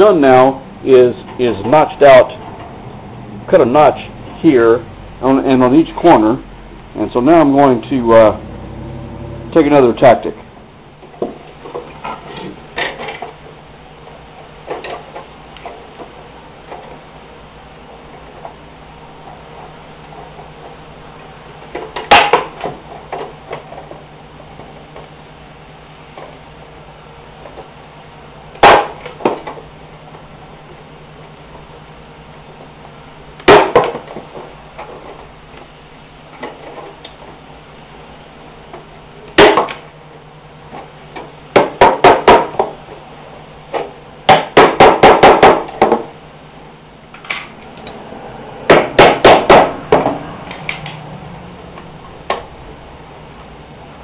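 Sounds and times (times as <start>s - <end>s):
hammer striking plywood: 28.6s - 29.4s, 33.4s - 34.0s, 39.4s - 39.7s, 41.5s - 42.8s, 44.3s - 46.1s, 48.7s - 50.2s.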